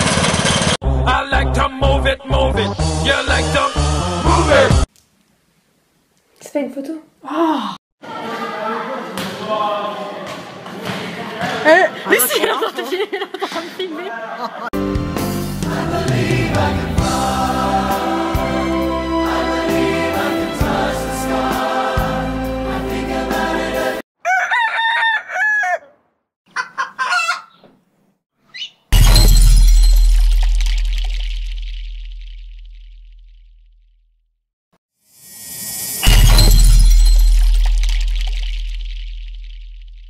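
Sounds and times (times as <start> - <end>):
choir singing: 15.4 - 24.0
short crowing calls: 24.2 - 27.7
deep booming hits: 36.0 - 40.0.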